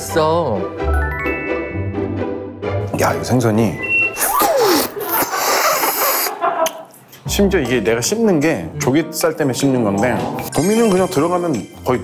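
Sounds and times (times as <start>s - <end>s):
small mouth noises: 4.2s - 6.4s
airy slurp of sauce: 4.4s - 6.4s.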